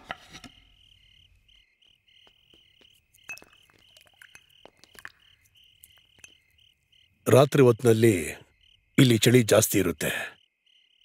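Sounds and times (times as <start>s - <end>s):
crickets chirping: 0.3s - 11.0s.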